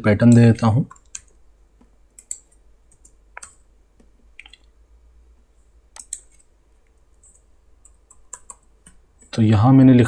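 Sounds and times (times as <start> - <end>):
computer keystrokes: 0.3 - 1.4, 2.1 - 4.6, 5.9 - 6.5, 7.2 - 9.0.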